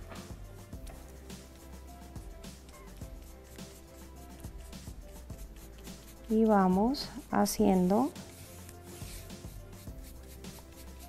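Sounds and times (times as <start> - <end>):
soft background music: 0.0 - 11.0
paint brush scratching on wood: 0.9 - 11.0.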